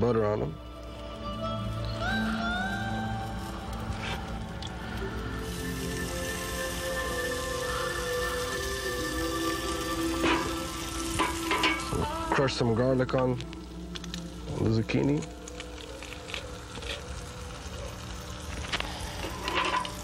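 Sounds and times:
background music: 0.0 - 20.0
butter sizzling on a grill: 0.1 - 20.0.

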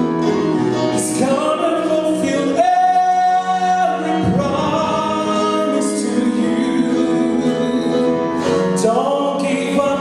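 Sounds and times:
electronic keyboard chords: 0.0 - 10.0
gospel choir singing: 0.9 - 10.0.

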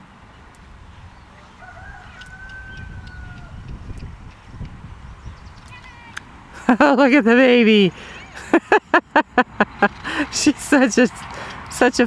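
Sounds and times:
rooster crowing: 1.4 - 3.7.

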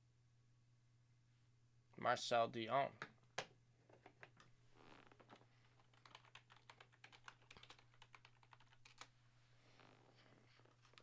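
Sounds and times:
low mains hum: 0.0 - 11.0
computer keyboard typing: 5.8 - 9.1.

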